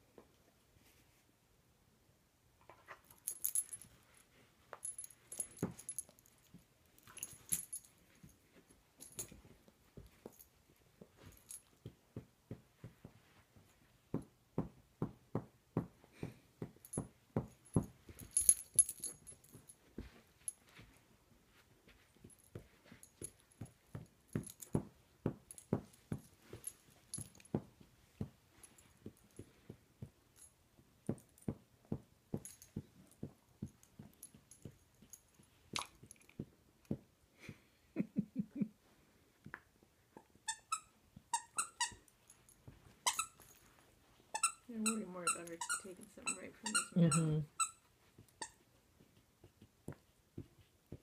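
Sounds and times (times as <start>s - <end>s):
metal collar tags jingling: 3.0s - 4.0s, 4.8s - 9.5s, 17.6s - 20.8s, 25.5s - 27.5s.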